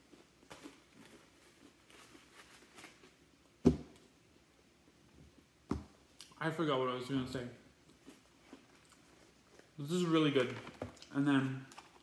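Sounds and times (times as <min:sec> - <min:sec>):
chewing crunchy food: 0:07.8 - 0:09.8.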